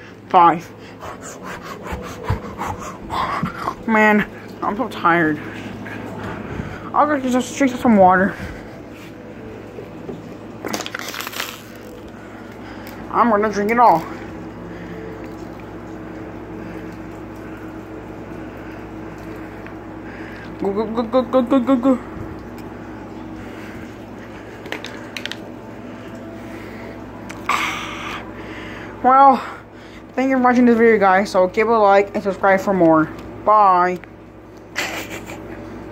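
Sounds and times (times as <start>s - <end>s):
low background hum: 0.0s - 35.9s
plastic bottle crinkling: 10.6s - 12.2s.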